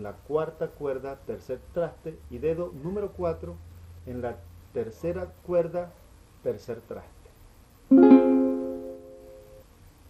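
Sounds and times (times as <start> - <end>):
strummed string chord: 7.9 - 9.6.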